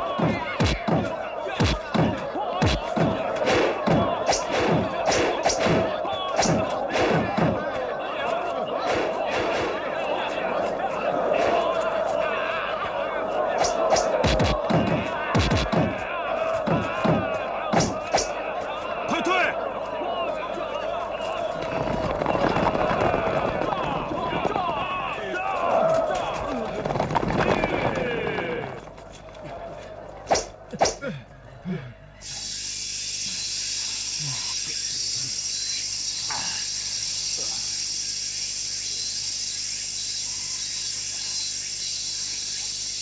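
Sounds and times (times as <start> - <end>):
sharp blows: 0.0 - 7.7, 13.5 - 16.1, 16.7 - 18.4
men shouting in battle: 0.0 - 21.1
cicadas buzzing: 32.2 - 43.0.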